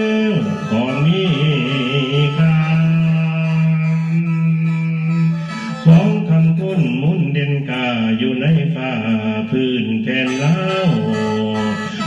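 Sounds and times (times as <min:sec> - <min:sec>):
mouth organ drone chord: 0:00.0 - 0:07.2, 0:09.0 - 0:12.0
man singing wordless gliding line: 0:00.0 - 0:12.0.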